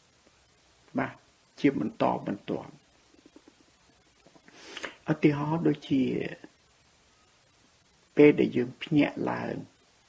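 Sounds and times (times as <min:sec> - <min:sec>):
person speaking: 0:00.9 - 0:03.6, 0:04.4 - 0:06.6, 0:08.1 - 0:09.7
faint mouth sounds: 0:03.1 - 0:05.1
breath drawn in: 0:04.5 - 0:05.0.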